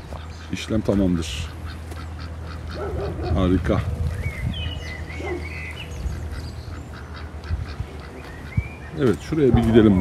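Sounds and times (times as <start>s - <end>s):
ducks calling: 0.0s - 10.0s
steady low rumble: 0.0s - 10.0s.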